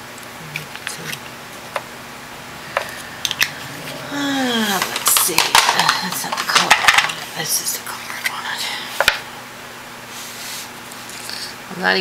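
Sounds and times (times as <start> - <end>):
person humming: 2.6 - 4.9.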